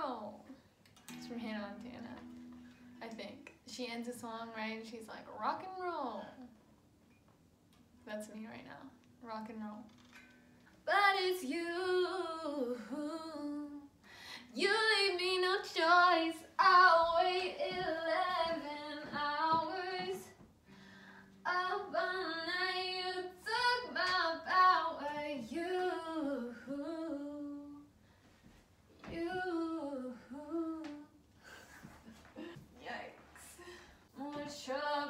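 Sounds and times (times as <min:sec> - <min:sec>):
woman singing unaccompanied: 0:10.9 - 0:20.4, 0:21.4 - 0:27.9, 0:29.0 - 0:31.2, 0:34.1 - 0:35.0.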